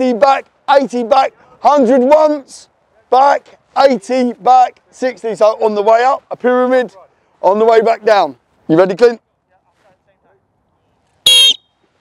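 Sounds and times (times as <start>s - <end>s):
coach's whistle blast: 11.2s - 11.8s.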